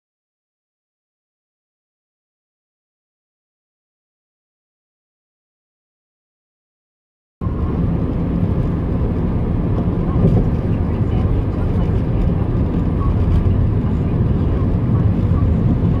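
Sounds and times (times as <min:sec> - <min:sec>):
vehicle road and engine noise: 0:07.4 - 0:16.0.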